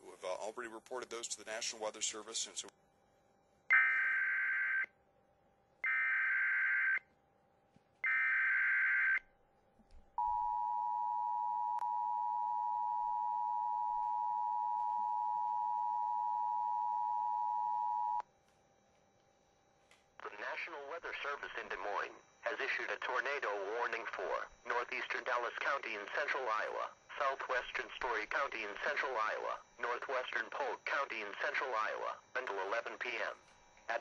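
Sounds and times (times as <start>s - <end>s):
dual-tone alarm: 3.7s - 4.9s, 5.8s - 7.1s, 8.0s - 9.3s, 10.2s - 18.4s, 19.0s - 34.0s.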